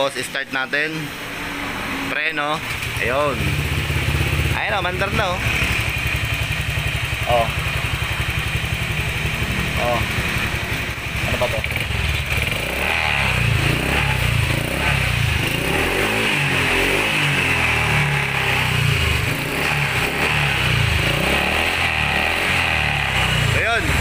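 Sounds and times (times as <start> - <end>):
scooter engine running: 2.6 - 24.0.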